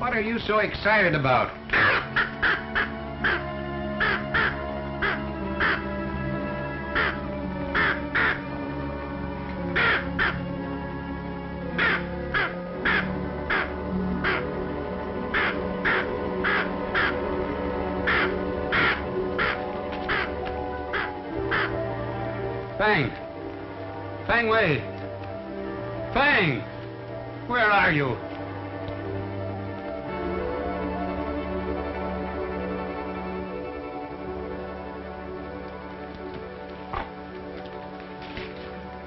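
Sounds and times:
orchestral dramatic chords: 0.0s - 35.8s
harsh crow caws: 1.7s - 6.2s, 6.8s - 8.5s, 9.6s - 10.6s, 11.8s - 14.6s, 15.2s - 17.3s, 18.0s - 21.8s.

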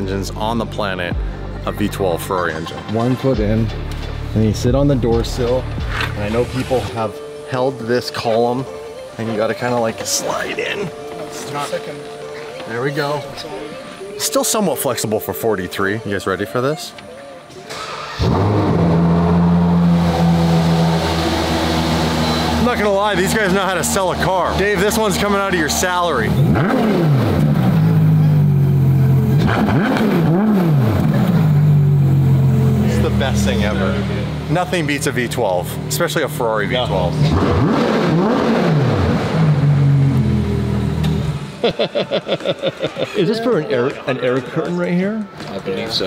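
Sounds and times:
car engine starting and idling: 17.6s - 41.7s.

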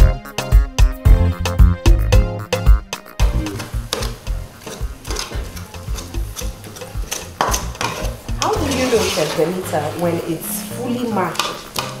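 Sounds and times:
background music: 0.0s - 12.0s
spoon mashing beans in metal pot: 3.6s - 12.0s.

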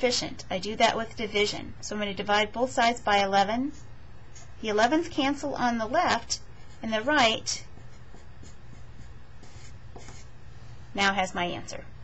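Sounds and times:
marker writing on paper: 6.6s - 10.3s.

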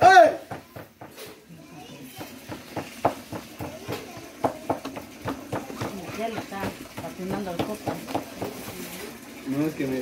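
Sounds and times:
hands patting dough: 2.1s - 9.0s.

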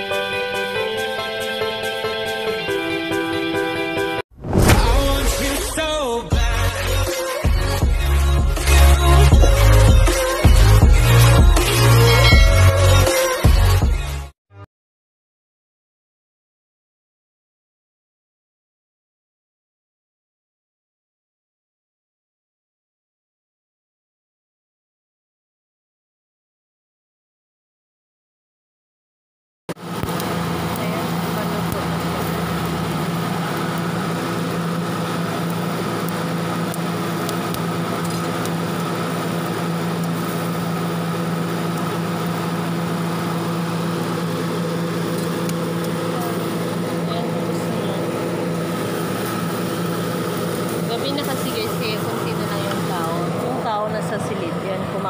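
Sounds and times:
engine idling hum: 5.0s - 13.1s, 29.8s - 55.0s
street noise: 8.7s - 13.8s, 29.8s - 43.3s, 44.0s - 55.0s
voices: 30.7s - 32.1s, 50.8s - 55.0s.

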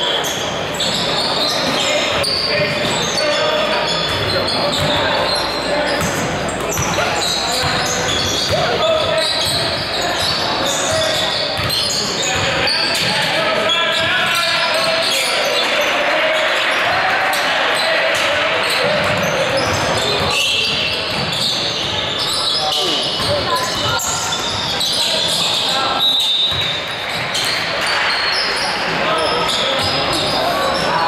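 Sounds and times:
echoing voices in hall: 0.0s - 31.0s.

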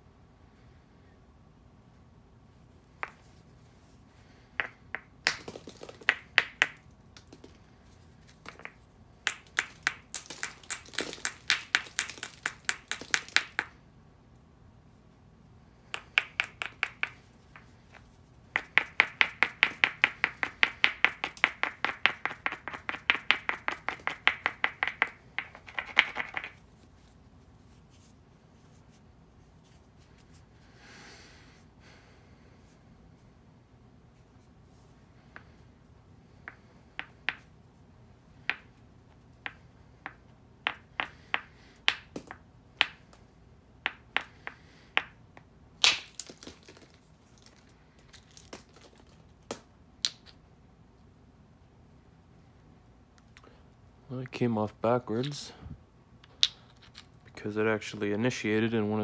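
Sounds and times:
hammerstone tapping stone: 4.6s - 7.6s, 8.4s - 13.7s, 15.9s - 18.0s, 18.6s - 26.6s, 36.4s - 37.5s, 38.5s - 38.7s, 39.4s - 43.0s, 43.8s - 47.0s.

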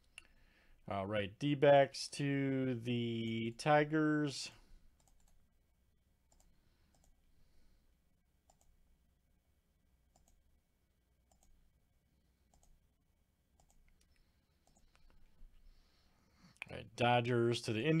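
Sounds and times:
computer mouse clicks: 5.0s - 5.4s, 6.3s - 7.2s, 8.4s - 8.8s, 10.1s - 10.4s, 11.2s - 11.6s, 12.5s - 12.8s, 13.6s - 15.3s.

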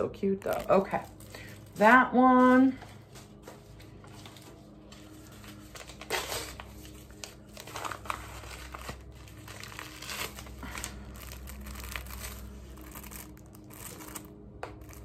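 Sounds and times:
plastic bags crinkling: 0.3s - 2.6s, 4.3s - 15.0s.

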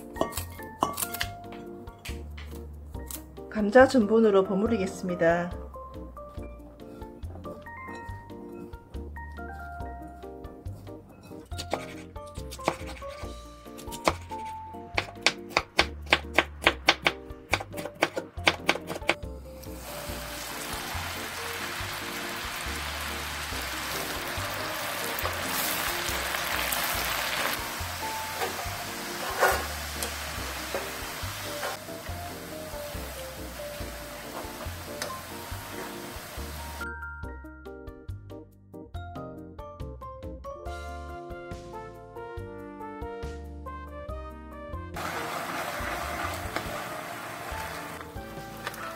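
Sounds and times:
background music: 0.0s - 48.9s
deep-frying crackling sizzle: 19.5s - 36.8s, 45.0s - 48.9s.

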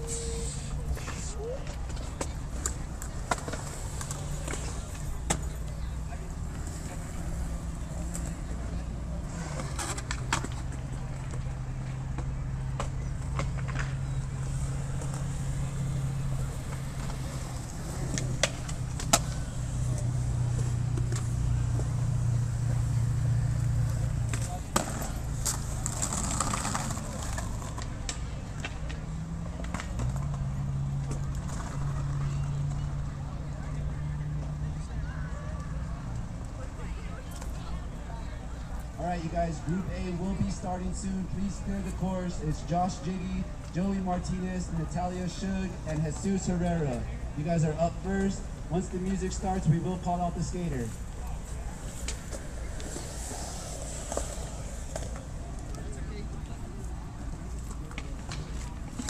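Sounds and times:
skateboards clacking: 0.0s - 33.2s, 39.6s - 59.0s
skateboard wheels rolling on concrete: 0.0s - 59.0s.

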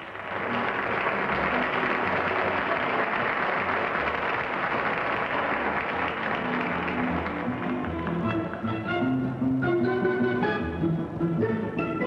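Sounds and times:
studio audience applauding: 0.0s - 8.1s
music playing low: 5.5s - 12.0s.

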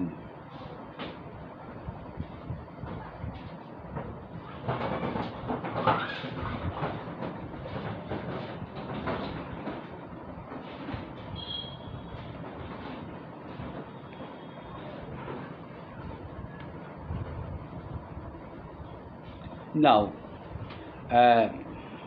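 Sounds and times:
rumbling rattling noise: 1.2s - 21.2s.

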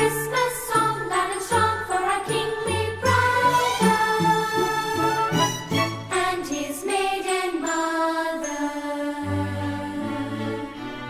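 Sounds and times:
background music with held notes: 0.0s - 11.0s.

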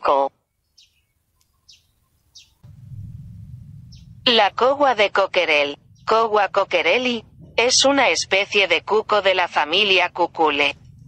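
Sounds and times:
steady low rumble: 2.6s - 11.0s
short high bird chirps: 3.9s - 4.2s.

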